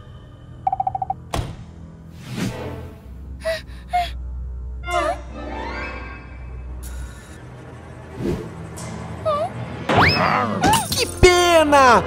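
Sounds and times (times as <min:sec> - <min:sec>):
ominous music drone: 0:00.0 - 0:00.8, 0:03.1 - 0:11.0.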